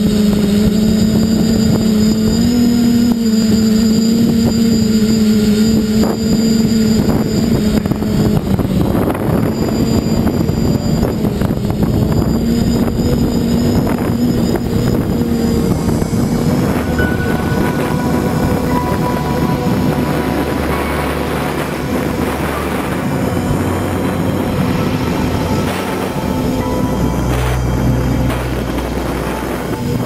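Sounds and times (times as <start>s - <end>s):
drone motors whirring: 0.0s - 18.7s
high-pitched whine: 0.0s - 30.0s
wind buffeting microphone: 0.0s - 30.0s.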